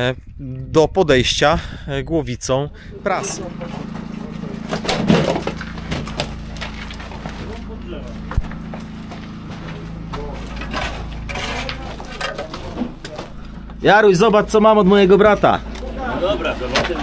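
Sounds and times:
steady low hum: 0:00.1 - 0:17.0
muffled voices: 0:02.7 - 0:17.0
light knocks and crunches: 0:03.6 - 0:13.8.

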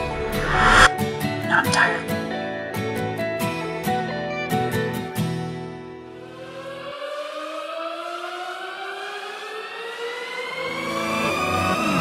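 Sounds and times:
low rumble: 0:00.0 - 0:00.9
synthesized rising tone: 0:00.0 - 0:00.9.

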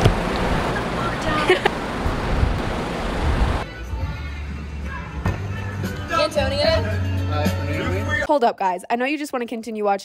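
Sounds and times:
car interior hum: 0:00.0 - 0:03.6
wind on microphone: 0:02.0 - 0:03.6.

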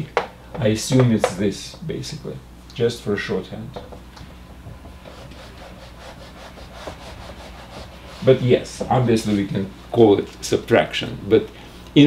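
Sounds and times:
eraser rubbing on whiteboard: 0:05.0 - 0:09.6.

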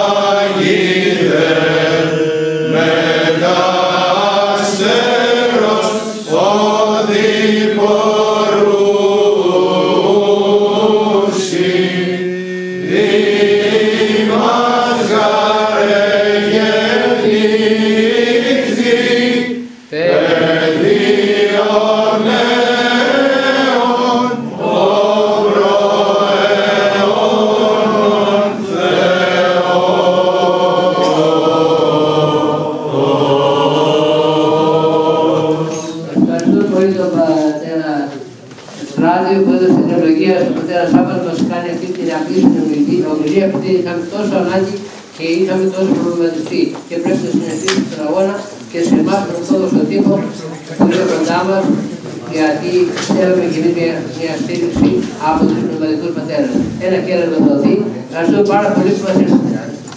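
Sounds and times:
congregation chanting a hymn: 0:00.0 - 0:59.9.

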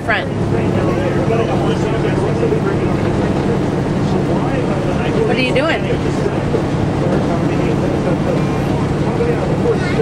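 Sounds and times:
bus engine drone: 0:00.0 - 0:10.0
road noise: 0:00.0 - 0:10.0.

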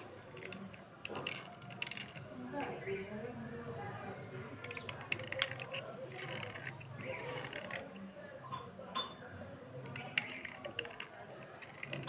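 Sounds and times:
blade scraping slate pencil: 0:00.0 - 0:02.9, 0:04.6 - 0:08.0, 0:09.8 - 0:12.0.

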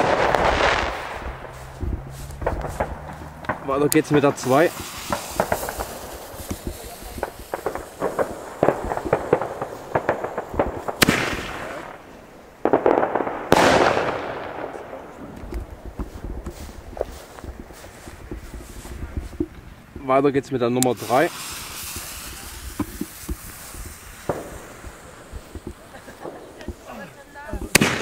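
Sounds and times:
fuse crackling and fizzing: 0:00.0 - 0:12.7, 0:15.1 - 0:28.0
firework shell bursting: 0:00.0 - 0:14.8, 0:20.8 - 0:28.0.

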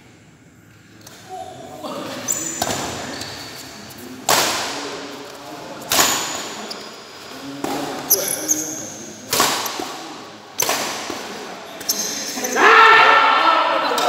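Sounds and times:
shoes squeaking on court: 0:02.1 - 0:04.0, 0:06.0 - 0:09.8, 0:11.7 - 0:12.5
rackets smacking shuttlecock: 0:04.2 - 0:04.9, 0:05.8 - 0:06.6, 0:09.2 - 0:12.0.

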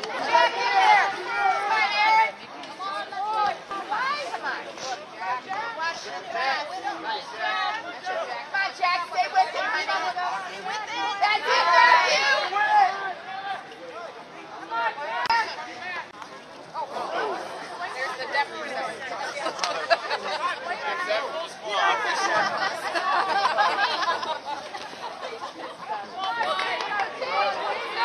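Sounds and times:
spectators chattering and calling out: 0:00.0 - 0:28.0.

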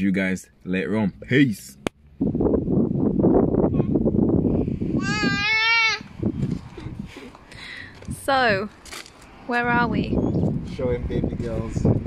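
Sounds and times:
infant crying: 0:05.0 - 0:06.1.

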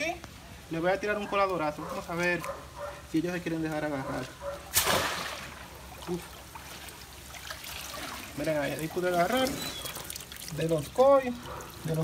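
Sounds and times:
water trickling and dripping: 0:03.3 - 0:12.0.

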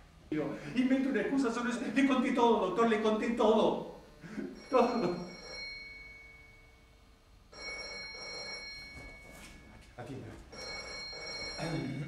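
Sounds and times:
telephone ringing: 0:04.4 - 0:06.8, 0:07.5 - 0:09.7, 0:10.5 - 0:12.0.

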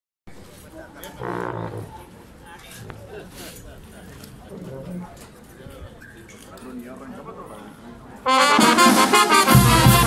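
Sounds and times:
faint voices: 0:00.3 - 0:08.6.

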